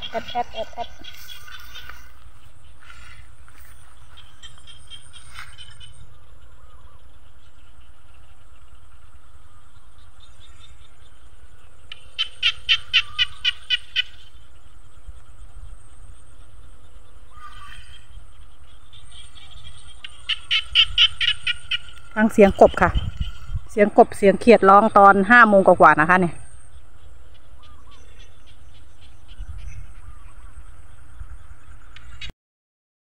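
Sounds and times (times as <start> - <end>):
frogs calling in pulsed trains: 0.0 - 32.3.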